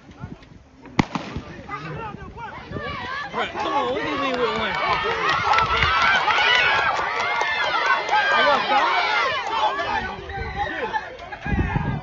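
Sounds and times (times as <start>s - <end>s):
starter's pistol crack: 1.0s - 1.5s
voices shouting: 1.2s - 12.0s.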